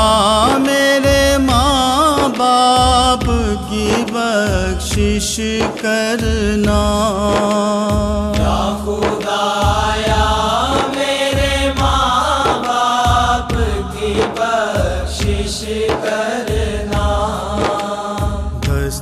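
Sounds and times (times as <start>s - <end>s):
melodic chanting voice: 0.0s - 19.0s
percussive beats: 0.0s - 19.0s.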